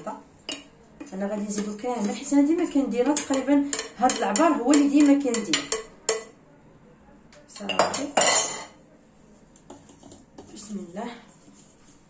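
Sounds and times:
utensils clinking in metal bowl: 1.5s - 6.3s, 7.6s - 8.8s.

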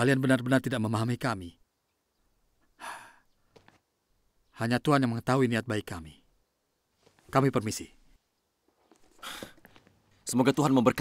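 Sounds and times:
person sighing: 2.8s - 3.2s, 9.1s - 9.7s
short breath: 9.2s - 9.6s.

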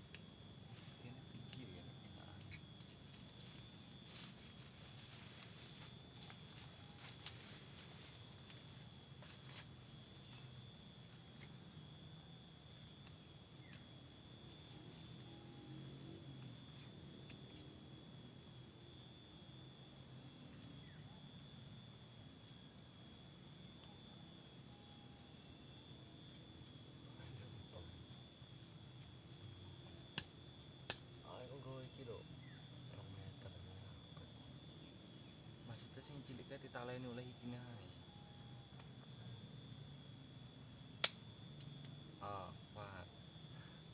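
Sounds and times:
high-pitched insect chorus: 0.0s - 43.9s.

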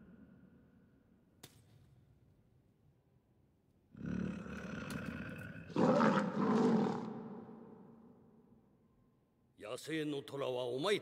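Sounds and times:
tiger roaring: 4.0s - 7.3s.

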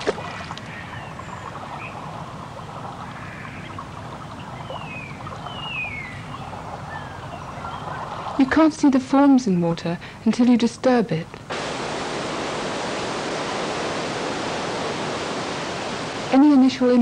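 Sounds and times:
water plop: 0.0s - 0.7s
steady background hiss: 0.0s - 17.0s
bird chirps: 4.4s - 8.0s.

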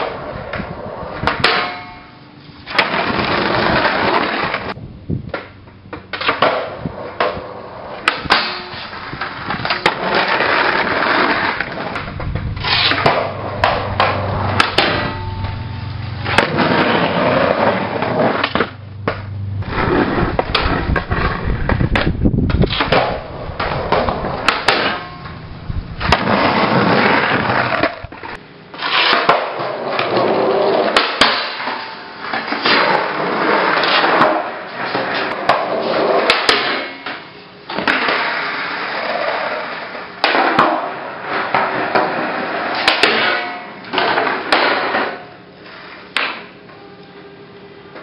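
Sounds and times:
skateboard wheels rolling on asphalt: 0.0s - 42.9s, 43.6s - 46.2s
skateboard clacks: 2.7s - 15.6s, 16.2s - 25.4s, 26.0s - 46.6s
steady rushing noise: 10.8s - 28.5s.

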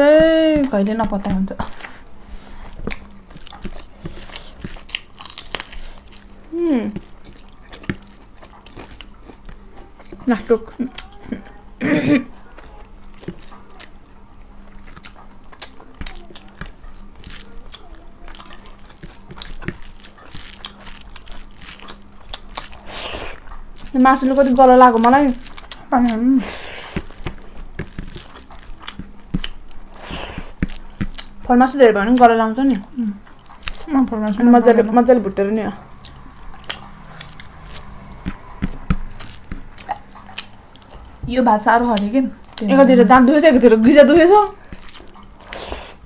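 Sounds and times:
chewing and wet smacking: 0.0s - 11.6s, 12.3s - 46.0s
chewing and wet mouth clicks: 14.7s - 23.9s, 25.4s - 26.2s, 26.9s - 31.4s, 35.6s - 42.7s.

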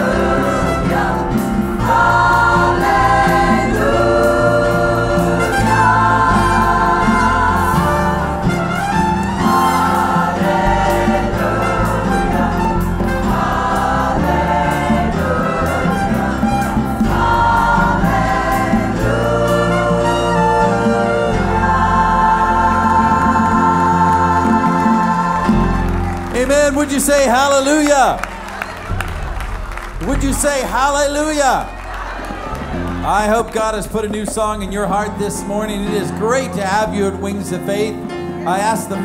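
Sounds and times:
gospel choir singing: 0.0s - 39.0s
instrumental accompaniment: 0.0s - 39.0s.

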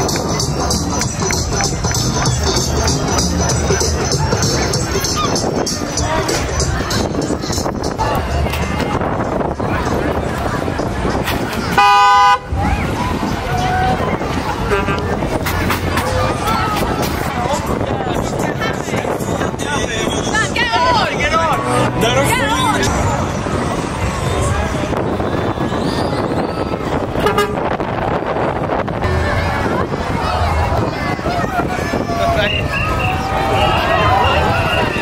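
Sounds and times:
crowd chatter: 0.0s - 35.0s
rumble of vehicles: 0.0s - 35.0s
vehicle horn honk: 11.8s - 12.5s, 14.7s - 15.1s, 27.2s - 27.7s.

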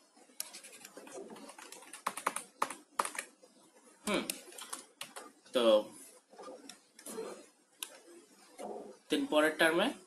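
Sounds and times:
computer keys clicking: 0.4s - 3.3s, 4.3s - 5.3s.

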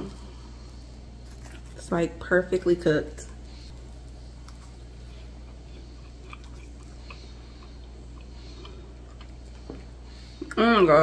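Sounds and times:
steady low hum: 0.0s - 11.0s
person chewing pastry: 1.0s - 1.8s, 3.6s - 10.6s.

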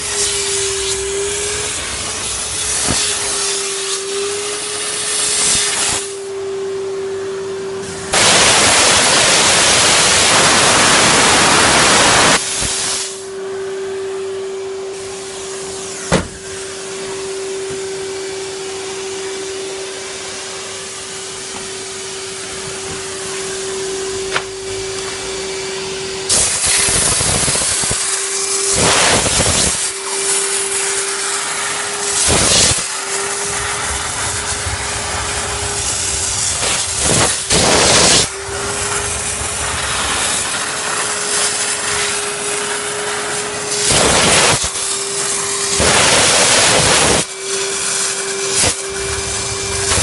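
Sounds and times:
steam nozzle hissing: 0.0s - 6.3s, 7.8s - 13.3s, 26.2s - 50.0s
vacuum cleaner motor running: 0.0s - 50.0s.

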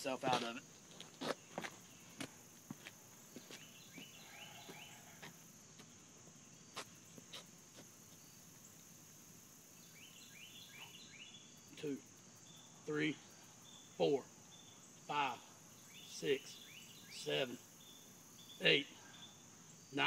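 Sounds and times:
crickets chorus: 0.0s - 20.0s
short chirping calls: 9.8s - 20.0s.

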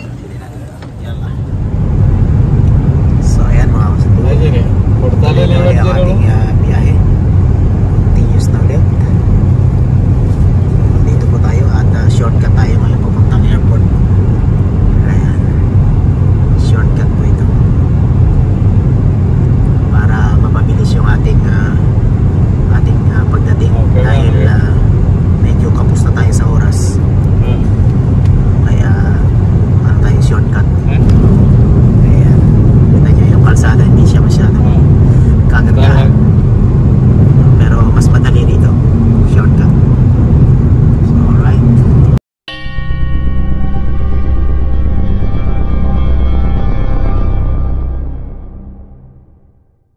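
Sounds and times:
road and engine rumble: 0.0s - 49.9s
faint voices: 23.8s - 24.8s.

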